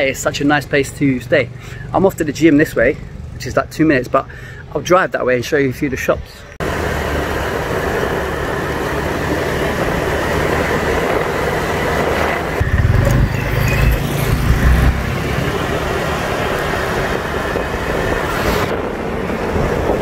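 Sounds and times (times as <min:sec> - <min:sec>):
road and wind noise: 0:00.0 - 0:20.0
scooter engine running: 0:06.6 - 0:20.0.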